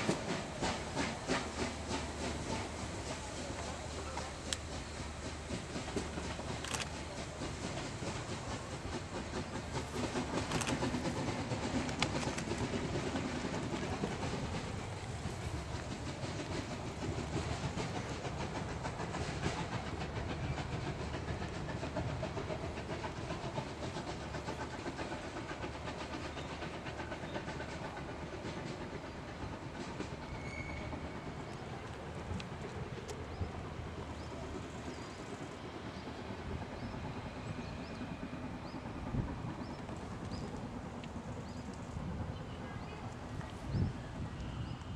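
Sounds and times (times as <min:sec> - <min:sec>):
train wheels clattering over rail joints: 0:00.0 - 0:44.9.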